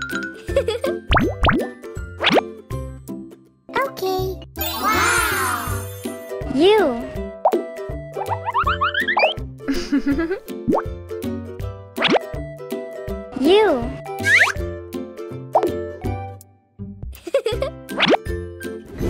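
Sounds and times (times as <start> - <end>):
children's background music: 0.0 - 19.0
cartoon swoops and plops: 12.0 - 12.3, 14.2 - 14.6.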